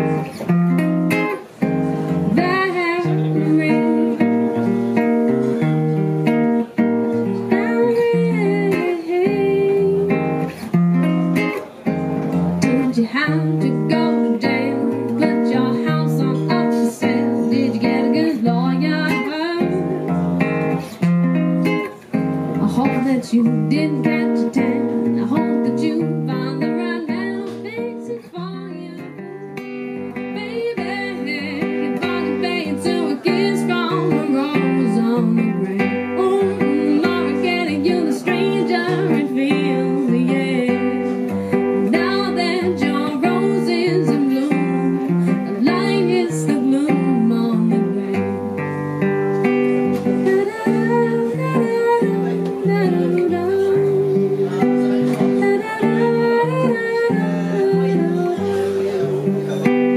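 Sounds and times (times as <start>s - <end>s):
woman singing: 0.0s - 11.2s, 12.3s - 21.0s, 21.6s - 59.3s
acoustic guitar: 0.0s - 59.9s.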